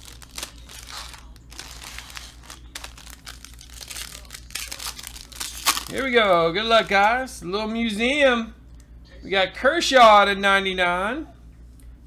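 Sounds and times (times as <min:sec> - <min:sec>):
foil wrapper crinkling and tearing: 0:00.0 - 0:07.0.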